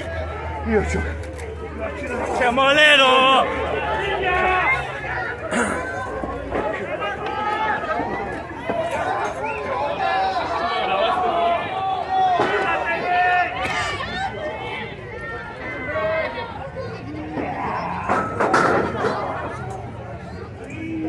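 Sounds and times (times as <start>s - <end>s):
crowd shouting and chattering: 0.0s - 21.0s.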